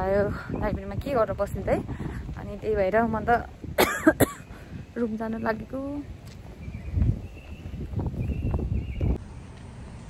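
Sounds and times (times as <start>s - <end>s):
woman talking: 0.0s - 3.6s, 5.0s - 6.1s
sharp cough: 3.8s - 4.5s.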